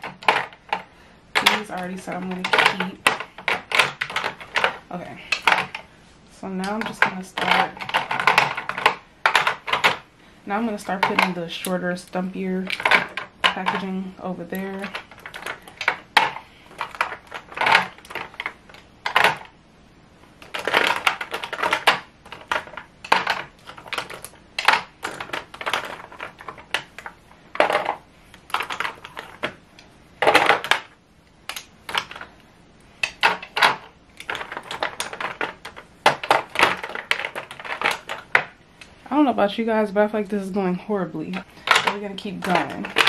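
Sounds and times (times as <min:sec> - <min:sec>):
plastic tubes clicking together: 0:00.0 - 0:05.9, 0:06.6 - 0:14.0, 0:14.7 - 0:19.5, 0:20.4 - 0:29.6, 0:30.2 - 0:32.4, 0:33.0 - 0:38.9, 0:41.2 - 0:43.0.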